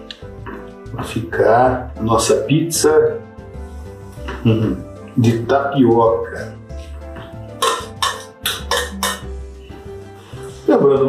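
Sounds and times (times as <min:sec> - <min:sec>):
background music: 0:00.0 - 0:11.0
metal spoon scraping steel bowl: 0:06.7 - 0:09.4.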